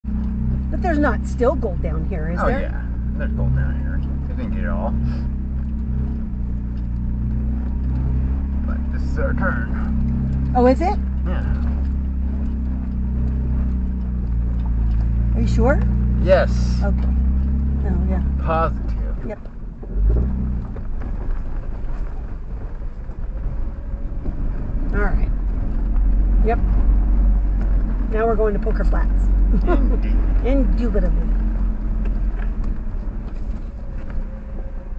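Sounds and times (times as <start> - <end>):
tyre and road noise: 0.0 - 34.9
vehicle engine low drone: 0.0 - 34.9.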